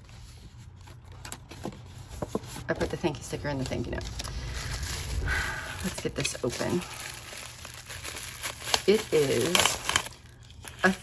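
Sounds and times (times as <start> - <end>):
bubble wrap crinkling: 3.2 - 11.0
small crackles of bubble wrap: 5.8 - 11.0.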